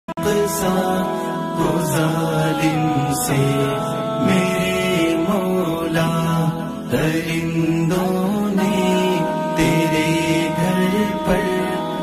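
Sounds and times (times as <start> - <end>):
person chanting long notes: 0.1 - 12.0.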